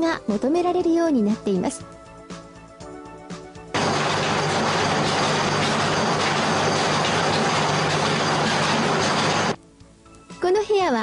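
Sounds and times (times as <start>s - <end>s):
loud machinery noise: 3.8s - 9.6s.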